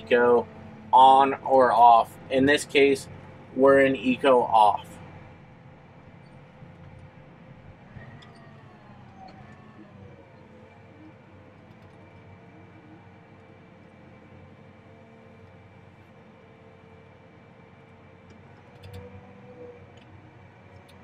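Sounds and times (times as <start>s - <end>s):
faint tractor diesel engine: 0.0s - 21.0s.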